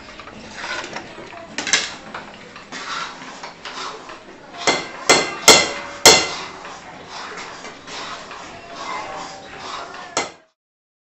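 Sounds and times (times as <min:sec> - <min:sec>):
ladle scraping thick paste: 0:00.0 - 0:01.1, 0:01.9 - 0:10.4.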